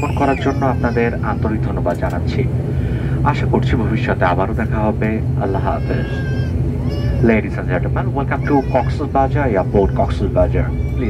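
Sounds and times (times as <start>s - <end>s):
voices: 0.0s - 2.6s, 3.2s - 11.0s
turboprop engines droning: 0.0s - 11.0s.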